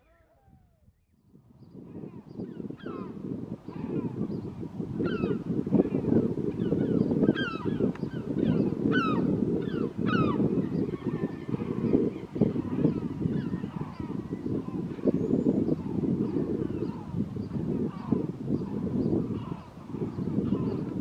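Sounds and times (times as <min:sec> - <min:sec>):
eagles calling: 0:01.8 - 0:21.0.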